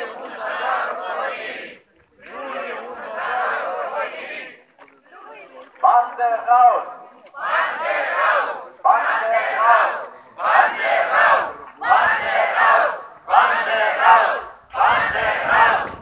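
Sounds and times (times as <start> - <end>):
crowd chanting a slogan: 0.0 - 4.6, 5.9 - 16.0.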